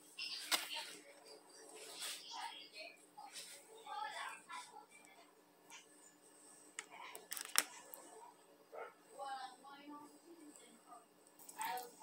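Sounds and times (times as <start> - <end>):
phone handling clicks and rustles: 7.2 - 7.7.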